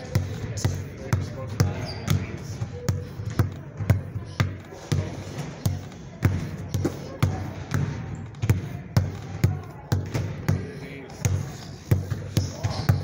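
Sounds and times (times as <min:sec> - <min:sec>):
basketball bouncing on hard floor: 0:00.1 - 0:13.0.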